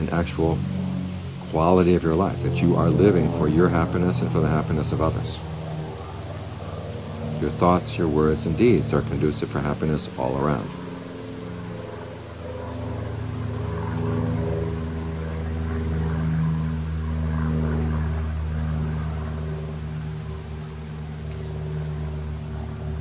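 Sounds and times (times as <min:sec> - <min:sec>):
low engine drone: 0:00.0 - 0:23.0
insects chirring: 0:16.8 - 0:21.0.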